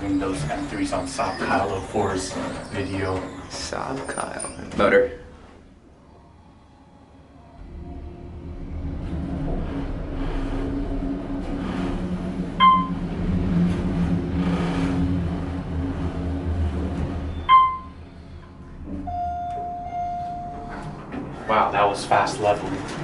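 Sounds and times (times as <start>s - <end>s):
elevator motor humming: 0.0s - 23.0s
elevator chime dings: 12.6s - 13.0s, 17.4s - 18.0s, 19.0s - 20.8s.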